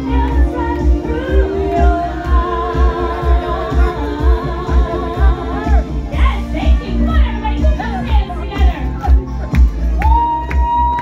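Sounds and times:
female vocal group singing: 0.0s - 8.9s
amplified music with bass beat: 0.0s - 11.0s.

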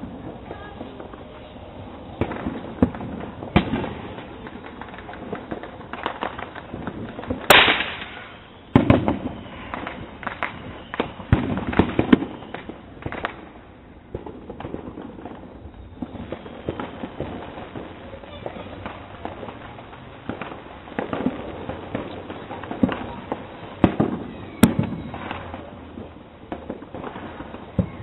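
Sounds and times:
fireworks bangs: 0.0s - 28.0s.

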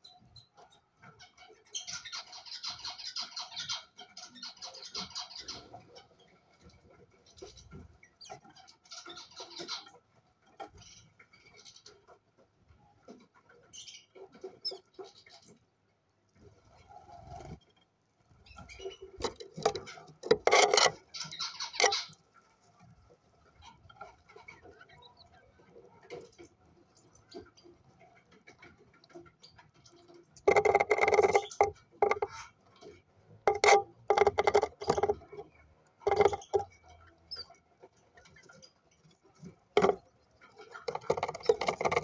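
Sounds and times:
light ticks and scratches: 0.0s - 42.0s
soft bird sounds: 0.0s - 42.0s
small movements in nest box: 19.1s - 22.1s, 30.5s - 32.4s, 33.5s - 35.5s, 36.1s - 36.7s, 39.8s - 40.0s, 40.8s - 42.0s.

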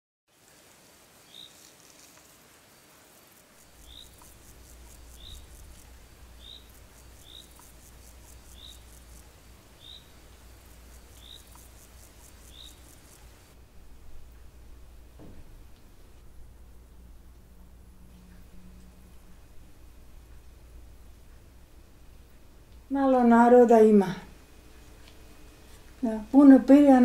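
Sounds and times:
insect buzzing: 0.4s - 13.6s, 17.7s - 27.0s
low steady rumble: 3.6s - 27.0s
bird chirping: 3.7s - 13.5s.

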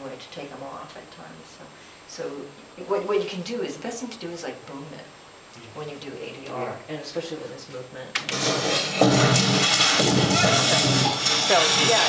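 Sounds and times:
film soundtrack music: 8.3s - 12.0s
noisy sound effects: 8.3s - 12.0s.

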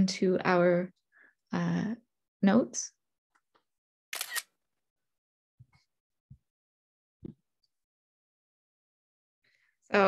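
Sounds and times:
camera shutter click: 4.2s - 4.5s.

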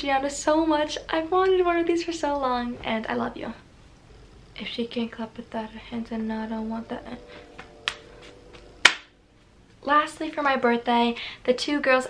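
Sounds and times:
hand claps: 7.6s - 9.1s.

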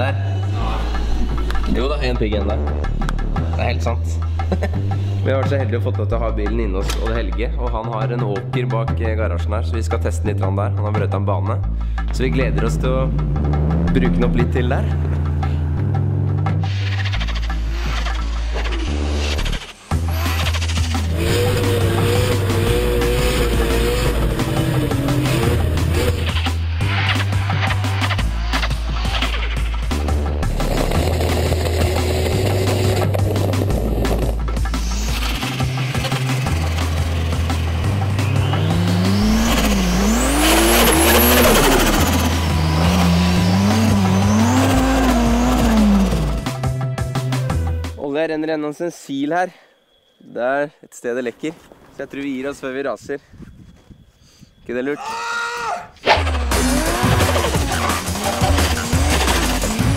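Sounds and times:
background music with bass line: 0.0s - 48.2s, 56.0s - 59.9s
car engine revving: 11.6s - 47.7s, 56.0s - 59.9s
tyres squealing: 54.8s - 59.9s.

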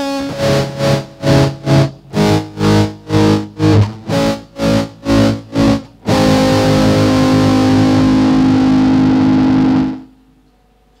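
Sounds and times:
electric guitar chord ringing: 0.0s - 10.3s
faint amplifier hum: 0.0s - 11.0s.

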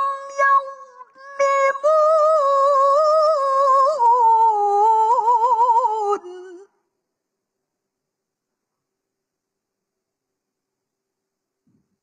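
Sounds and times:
woman chanting melodic recitation: 0.0s - 6.6s.

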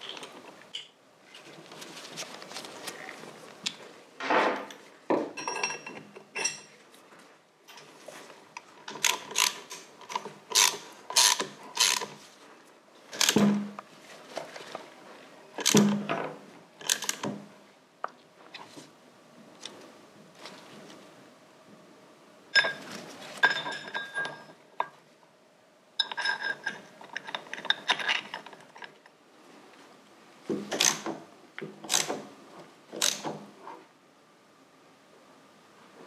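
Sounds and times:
socket ratchet clicking: 9.0s - 12.1s, 33.0s - 33.2s.

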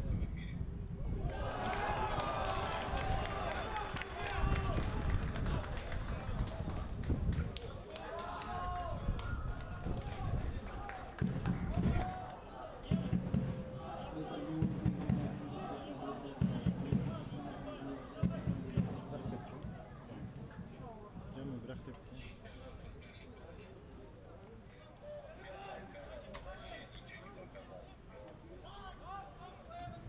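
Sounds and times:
men shouting and calling out: 9.7s - 20.3s.

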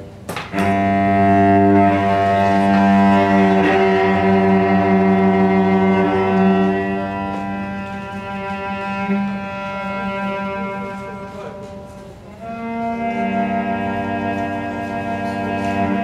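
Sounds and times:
bowed cello drone: 0.0s - 16.0s.

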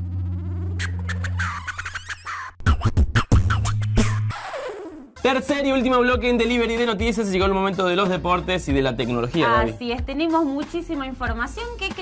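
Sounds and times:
held low synth note: 0.0s - 1.2s.

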